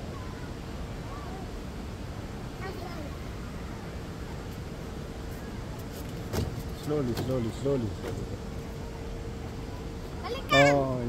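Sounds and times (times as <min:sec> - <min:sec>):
faint hum: 0:00.0 - 0:11.0
low outdoor rumble: 0:00.0 - 0:11.0.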